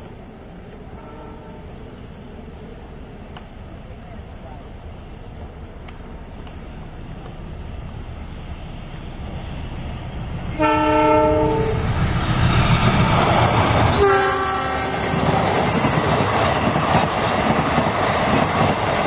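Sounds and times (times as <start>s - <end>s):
diesel locomotive engine rumble: 0.0s - 19.0s
multi-tone train air horn: 1.0s - 1.8s, 10.6s - 11.8s, 13.9s - 15.1s.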